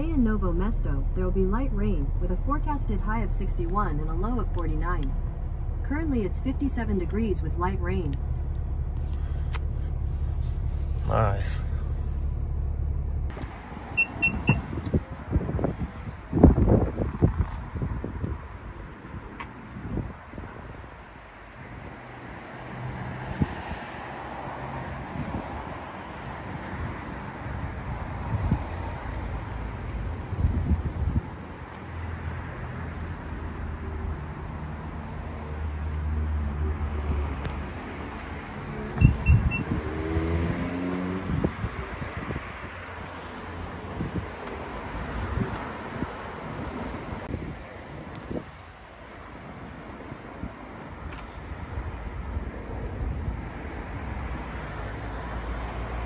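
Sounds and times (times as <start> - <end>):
traffic: 0.0 - 56.0
wind: 0.0 - 56.0
short warning beeps: 14.0 - 14.7, 39.0 - 39.7.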